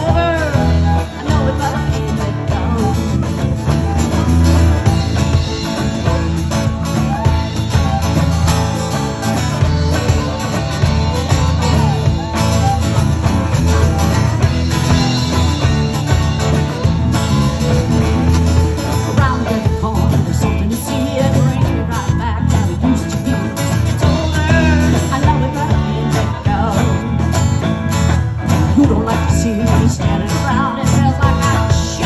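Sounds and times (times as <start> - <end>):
woman singing: 0.0 - 5.5, 18.6 - 27.3, 28.5 - 32.0
live country band playing: 0.0 - 32.0.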